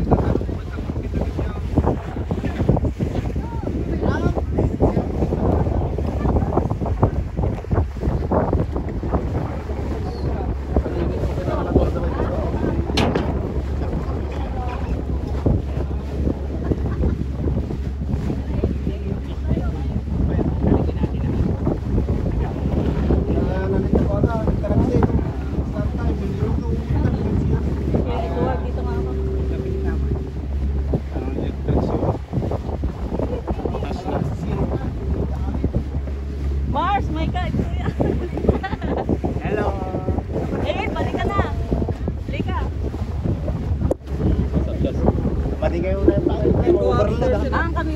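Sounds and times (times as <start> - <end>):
steady low rumble: 0.0 - 47.9
wind buffeting microphone: 0.0 - 47.9.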